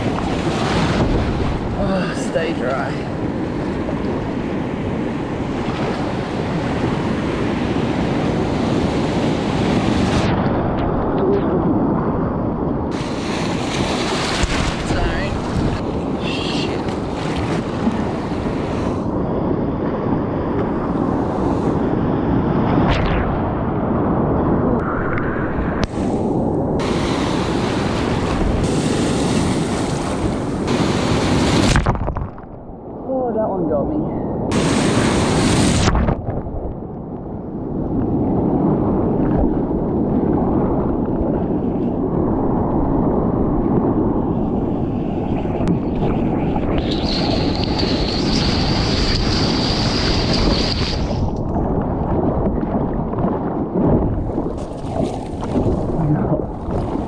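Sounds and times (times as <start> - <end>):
wave washing over kayak: 0.0 - 33.4, 34.5 - 36.8, 38.0 - 57.0
surf rushing: 0.0 - 33.7, 34.3 - 36.7, 38.2 - 57.0
wind buffeting microphone: 0.0 - 57.0.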